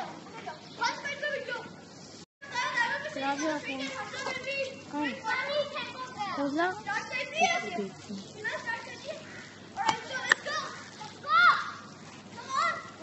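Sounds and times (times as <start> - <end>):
children shouting at play: 0.0 - 1.8, 2.4 - 13.0.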